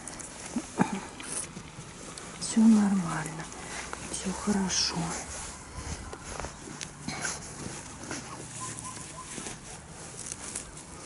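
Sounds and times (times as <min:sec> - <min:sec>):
fabric cover rustling: 0:00.0 - 0:11.0.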